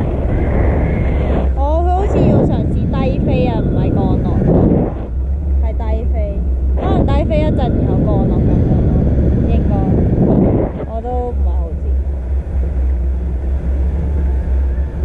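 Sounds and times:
wind rumbling on microphone: 0:00.0 - 0:15.0
person's voice: 0:01.6 - 0:04.5, 0:05.7 - 0:10.0, 0:10.8 - 0:12.0.

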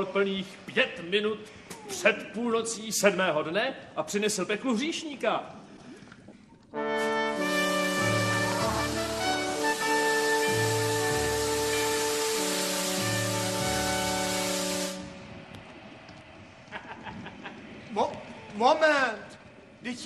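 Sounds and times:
brass fanfare: 0:06.8 - 0:15.4
low bass notes: 0:07.2 - 0:15.6
steady rushing noise: 0:07.3 - 0:20.0.

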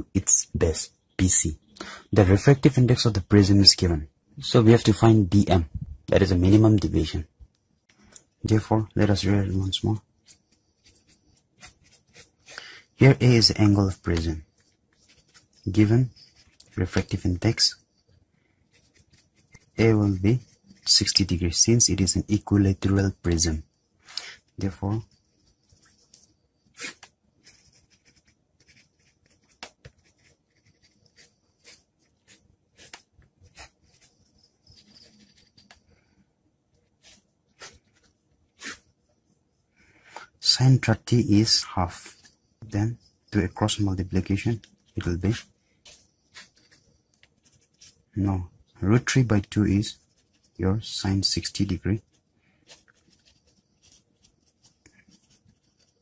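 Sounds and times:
pen scratching on paper: 0:10.0 - 0:23.4, 0:24.4 - 0:36.2, 0:36.8 - 0:39.0, 0:42.0 - 0:48.4, 0:49.0 - 0:56.0.

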